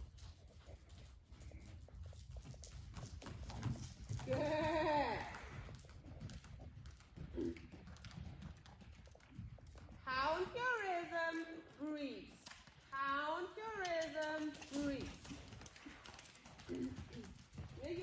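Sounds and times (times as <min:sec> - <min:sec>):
horse hoofbeats on sand: 0:00.0 - 0:18.0
person speaking: 0:13.0 - 0:15.1.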